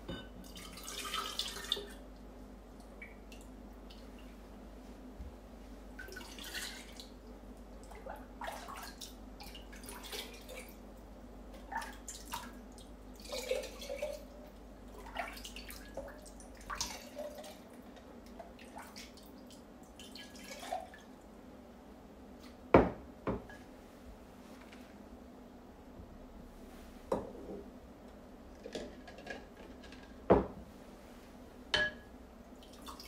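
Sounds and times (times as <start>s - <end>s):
water dripping and splashing: 14.9s - 21.0s.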